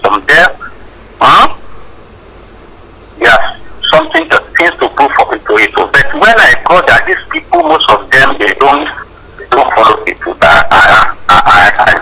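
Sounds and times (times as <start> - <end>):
man talking rapidly: 0.0 - 1.6, 3.2 - 12.0.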